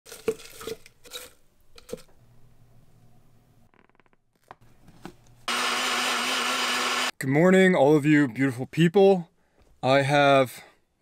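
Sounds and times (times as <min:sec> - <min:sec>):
blender motor running: 0:05.5 - 0:07.1.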